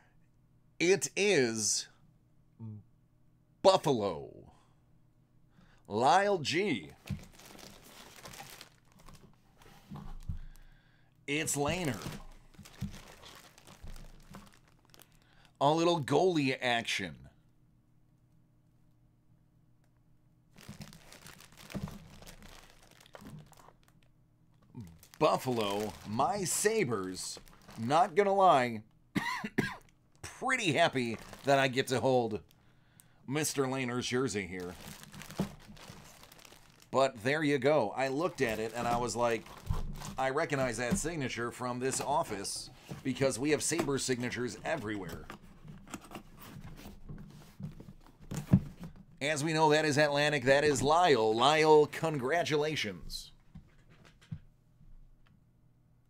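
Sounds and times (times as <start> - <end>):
plastic bag crinkling: 6.9 - 10.7, 11.4 - 15.5, 20.5 - 28.3, 30.6 - 32.6, 33.4 - 37.0, 38.0 - 46.6.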